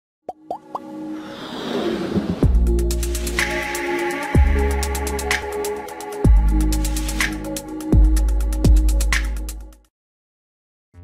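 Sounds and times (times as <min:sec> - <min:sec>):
rising pop sound effects: 0:00.3 - 0:00.9
whoosh: 0:01.1 - 0:03.5.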